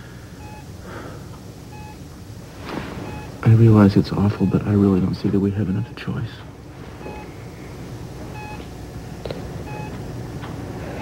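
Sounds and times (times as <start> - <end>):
low steady hum: 0.0 - 11.0
patient monitor beeping: 0.4 - 0.8, 1.4 - 2.2, 2.9 - 6.0, 7.0 - 10.2.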